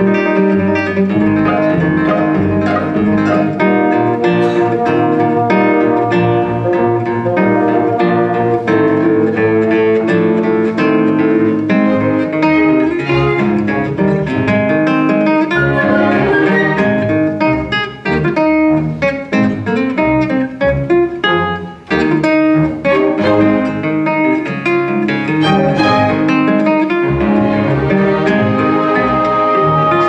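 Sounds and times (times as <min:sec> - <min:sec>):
classical guitar fingerstyle: 0:00.0 - 0:30.0
orchestral bowed strings: 0:01.1 - 0:14.7, 0:15.4 - 0:17.7, 0:22.0 - 0:24.5, 0:25.1 - 0:30.0.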